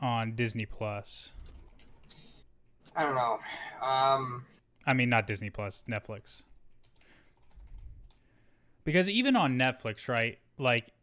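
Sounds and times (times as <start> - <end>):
man talking: 0.0 - 1.4, 2.9 - 6.5, 8.8 - 11.0
keyboard typing clicks: 5.8 - 8.7.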